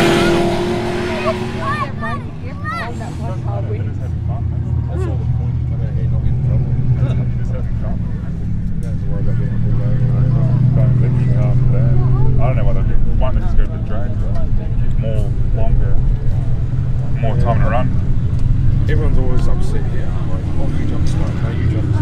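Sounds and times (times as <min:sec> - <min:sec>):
people talking: 0:00.0 - 0:18.0, 0:18.8 - 0:22.0
racing car engines droning: 0:00.0 - 0:22.0.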